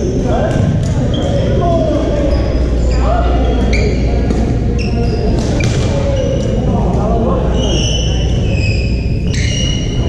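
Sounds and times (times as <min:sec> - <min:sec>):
shoes squeaking: 0:00.4 - 0:06.6, 0:07.5 - 0:10.0.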